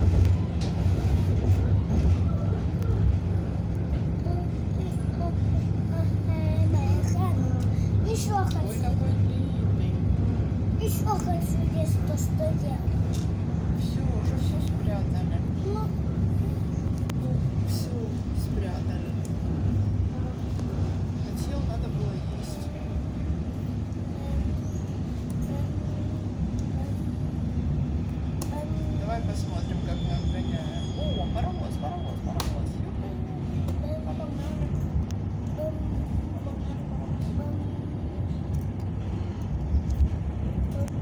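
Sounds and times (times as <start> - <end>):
train running at speed: 0.0 - 41.0.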